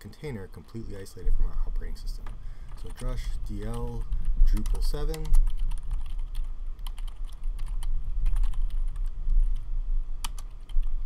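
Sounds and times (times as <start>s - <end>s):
low hum: 0.0s - 11.0s
computer keyboard typing: 2.7s - 9.6s, 10.2s - 10.8s.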